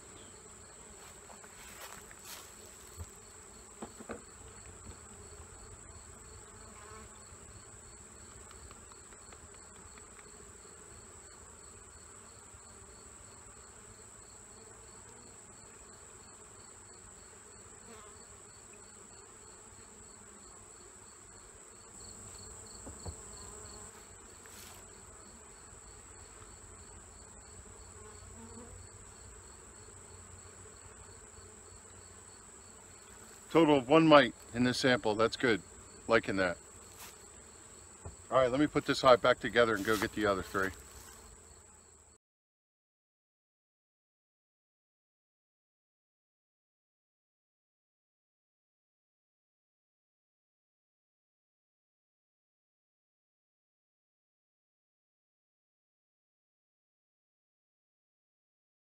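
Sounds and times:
bees humming: 0.0s - 41.9s
insects chirping: 20.8s - 42.0s.

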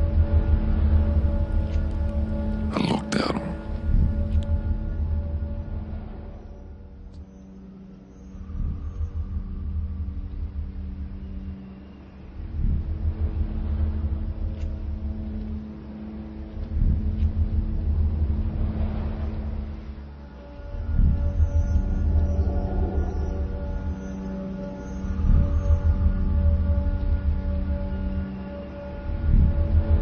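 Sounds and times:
low drone tones: 0.0s - 30.0s
deep rumbling bass swells: 8.2s - 30.0s.

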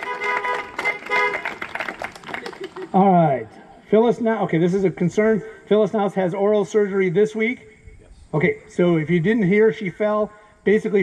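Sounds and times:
car horns honking: 0.0s - 1.6s
hand claps: 0.0s - 2.9s.

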